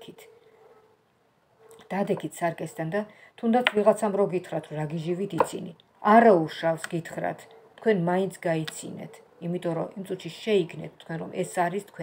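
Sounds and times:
woman talking: 0.0 - 0.3, 1.8 - 12.0.

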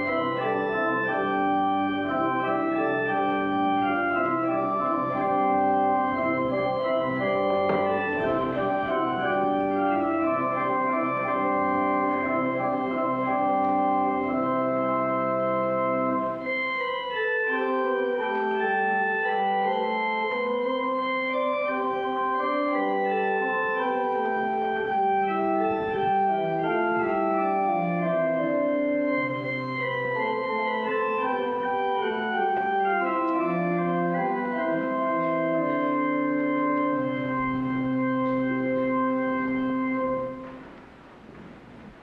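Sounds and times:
organ playing slow chords: 0.0 - 42.0.

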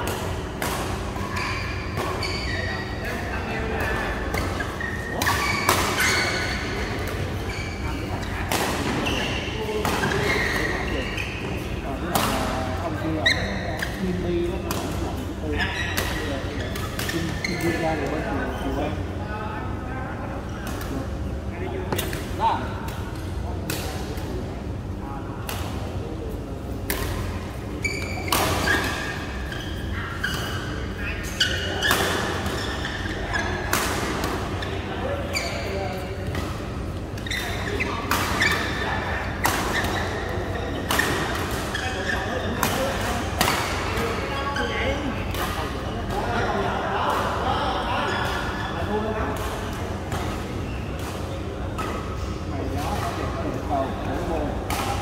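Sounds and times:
rackets hitting shuttlecock: 42.6 - 44.1.

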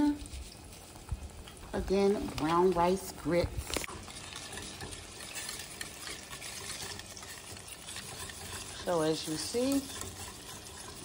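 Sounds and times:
whisk scraping a saucepan: 0.0 - 11.0.

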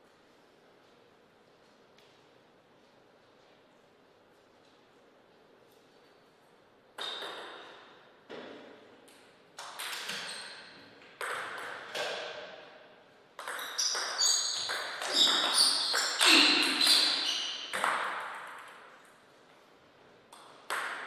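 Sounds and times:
table tennis ball hits: 7.0 - 12.8, 13.4 - 19.0, 20.3 - 21.0.

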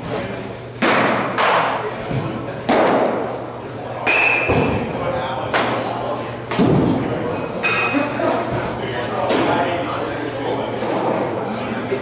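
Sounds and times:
baseballs smacking into mitts: 0.8 - 3.3.

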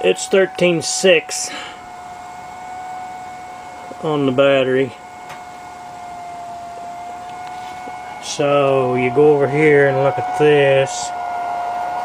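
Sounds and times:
electronics whine: 0.0 - 12.0.

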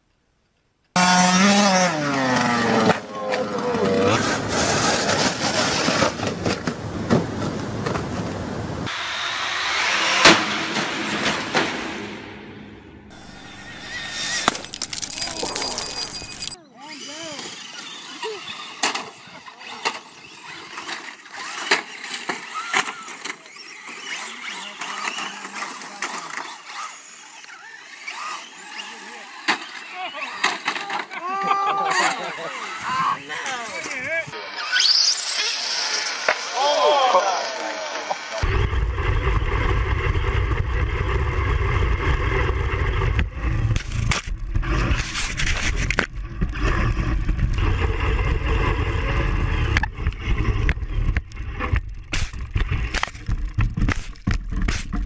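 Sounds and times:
toy cars crashing: 1.0 - 7.4, 13.4 - 38.4, 43.5 - 55.0
lawn mower engine drone: 1.0 - 27.8, 28.4 - 55.0
voices: 2.9 - 4.5, 15.1 - 21.0, 22.3 - 38.5.

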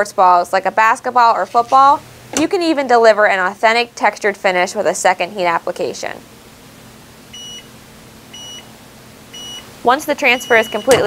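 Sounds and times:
timer beeping: 10.3 - 11.0.

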